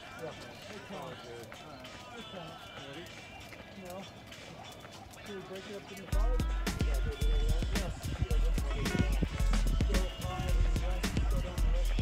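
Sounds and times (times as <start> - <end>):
distant voices talking: 0.0 - 12.0.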